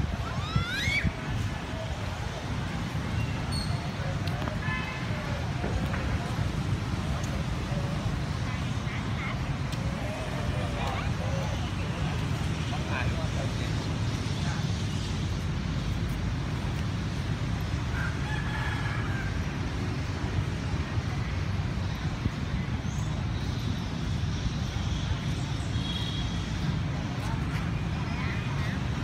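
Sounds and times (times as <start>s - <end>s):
distant voices: 0.0s - 29.0s
low rumble of traffic: 0.0s - 29.0s.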